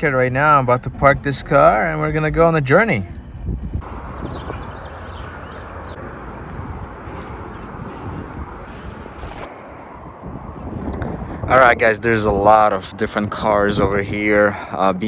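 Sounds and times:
wind rush on microphone: 0.8s - 15.0s.

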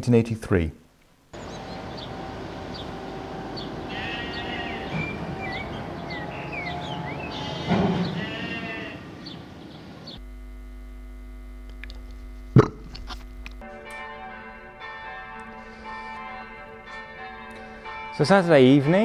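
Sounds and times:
church bells ringing: 1.4s - 10.2s, 13.6s - 19.0s
sheep bleating: 3.6s - 9.3s.

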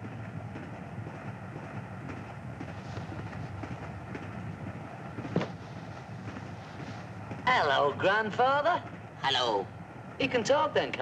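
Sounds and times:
train carriage rumble and rattle: 0.0s - 11.0s.

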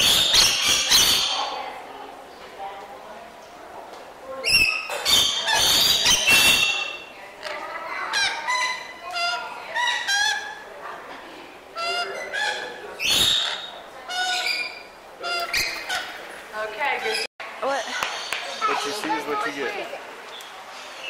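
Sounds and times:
lorikeets screeching and chattering: 0.0s - 1.6s, 4.4s - 7.1s, 7.9s - 10.7s, 11.8s - 16.3s, 17.0s - 19.6s.

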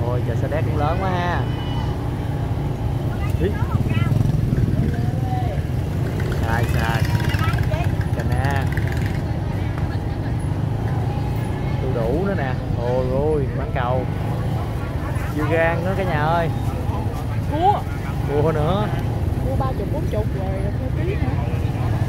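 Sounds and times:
vendors and shoppers talking: 0.0s - 22.0s.

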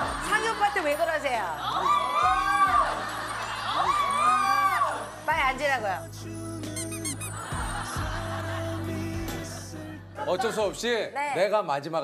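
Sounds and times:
short high chirps: 6.7s - 7.4s.

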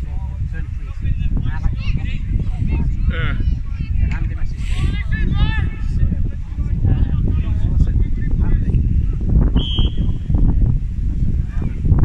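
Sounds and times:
wind buffeting microphone: 0.0s - 12.0s
referee's whistle blast: 9.6s - 10.2s.

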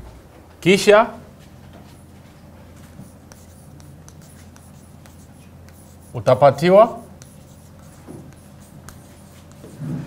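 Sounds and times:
low steady hum: 0.0s - 10.0s
chalk writing on blackboard: 1.8s - 2.2s, 2.8s - 10.0s.

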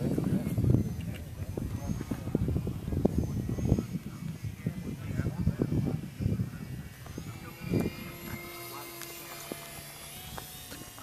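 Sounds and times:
model airplane motor whining: 0.0s - 11.0s.

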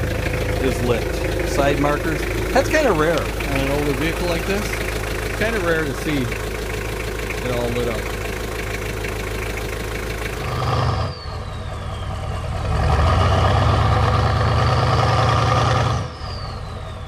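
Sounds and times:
diesel engine idling: 0.0s - 17.0s
engine-like rumble: 0.0s - 17.0s.

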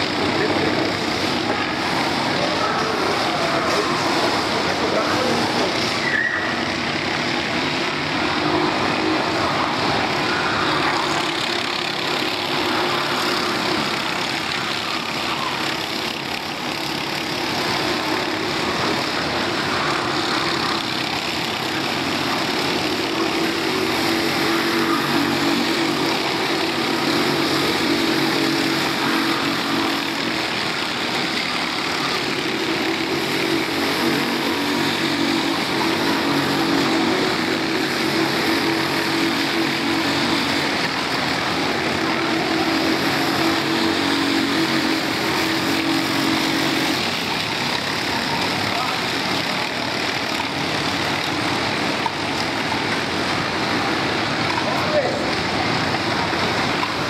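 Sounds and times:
kart engines racing: 0.0s - 57.0s.

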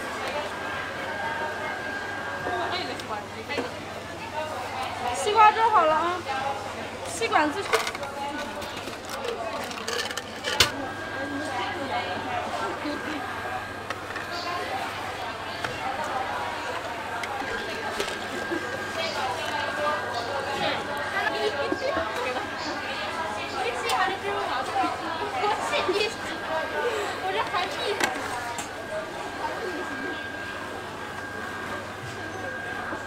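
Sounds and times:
chatter of people talking: 0.0s - 33.0s.

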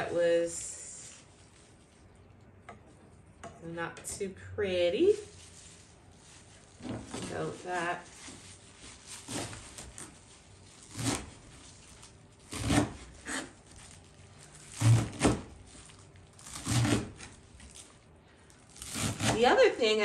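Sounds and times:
herbs rustling: 0.0s - 2.6s, 4.9s - 19.7s.

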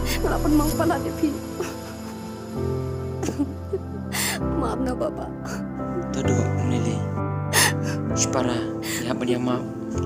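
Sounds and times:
slow background music: 0.0s - 10.0s.

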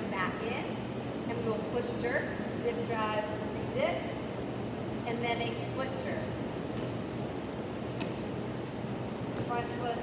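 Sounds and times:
woman's voice: 0.0s - 4.2s, 5.1s - 6.3s, 9.5s - 10.0s.

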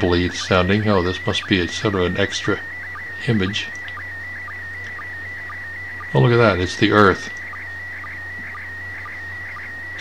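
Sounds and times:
short low sync blips: 0.0s - 10.0s
warbly steady signal tone: 0.0s - 10.0s.

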